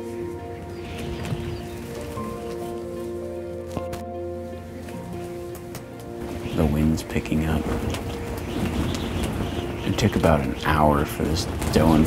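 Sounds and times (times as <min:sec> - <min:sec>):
wind shaking fabric walls: 0:00.0 - 0:03.2, 0:04.9 - 0:12.0
faint background music: 0:00.0 - 0:12.0.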